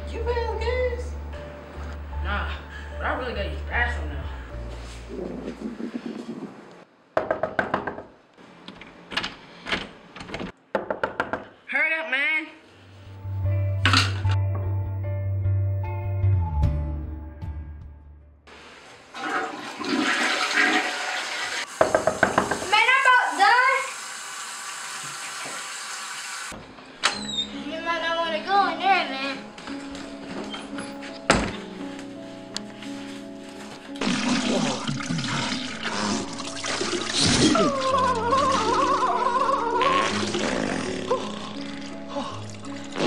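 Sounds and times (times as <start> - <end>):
toilet flushing: 19.0 - 26.6, 34.0 - 39.2.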